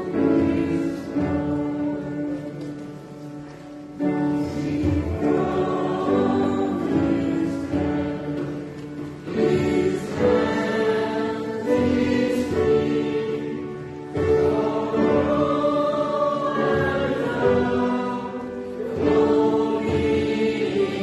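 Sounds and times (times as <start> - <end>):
choir singing a hymn: 0.0 - 21.0.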